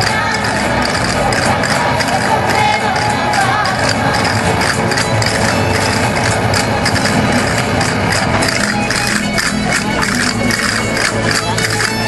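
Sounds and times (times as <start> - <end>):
folk dance music: 0.0 - 12.0
sharp percussive clicks: 0.0 - 12.0.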